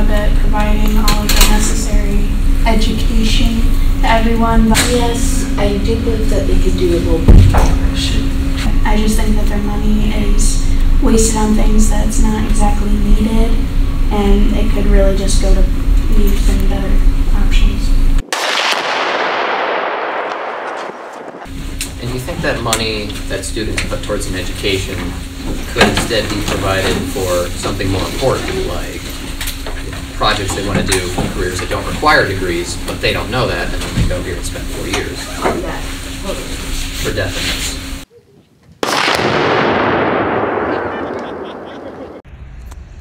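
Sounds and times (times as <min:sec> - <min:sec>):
explosion blast: 0:18.2 - 0:21.5, 0:38.8 - 0:43.0.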